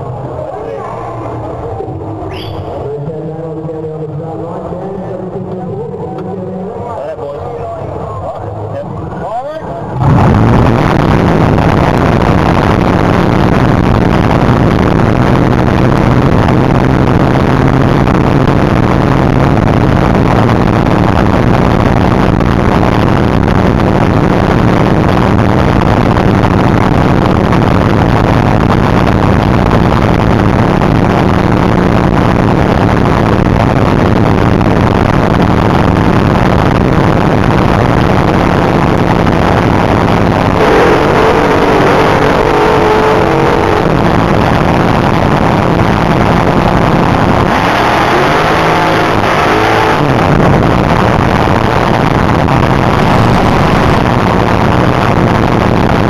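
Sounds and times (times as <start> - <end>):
dragster engine idling loud: 7.6 - 47.5.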